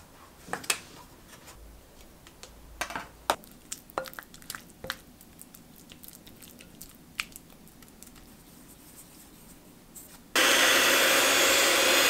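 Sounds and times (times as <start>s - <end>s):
spatula mashing cream cheese: 3.4s - 9.3s.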